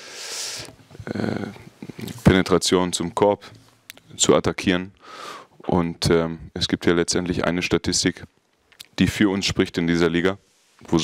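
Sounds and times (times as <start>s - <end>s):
man breathing into microphone: 0.0s - 1.9s, 5.0s - 5.6s
mouth clicks: 8.6s - 9.0s.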